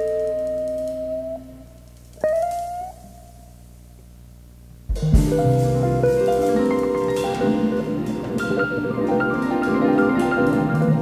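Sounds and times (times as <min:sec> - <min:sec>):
piano and guitar chord: 0:04.9 - 0:11.0.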